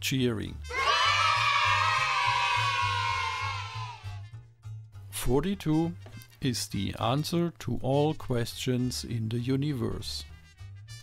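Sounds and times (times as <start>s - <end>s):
background music with low pulse: 0.0s - 11.0s
crowd cheering: 0.7s - 4.1s.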